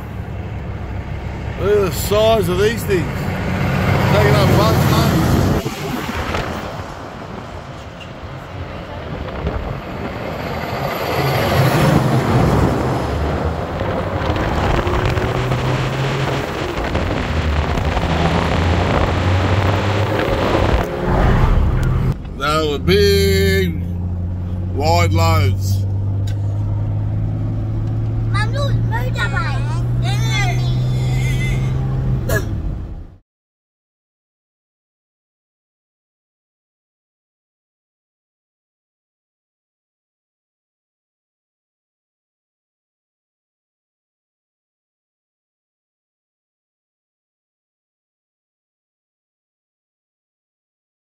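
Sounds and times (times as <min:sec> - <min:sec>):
trucks passing: 0:00.0 - 0:33.2
wind and road noise: 0:00.0 - 0:33.2
engine hum in cabin: 0:13.4 - 0:33.2
child squealing and babbling: 0:28.4 - 0:32.4.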